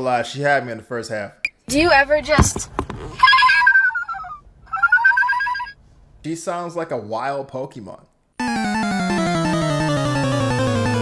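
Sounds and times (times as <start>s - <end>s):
woman making trilled cry: 3.2s - 5.8s.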